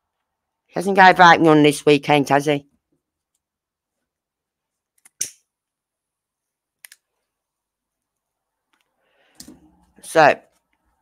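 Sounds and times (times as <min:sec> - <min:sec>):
speech: 0:00.7 - 0:02.7, 0:10.0 - 0:10.5.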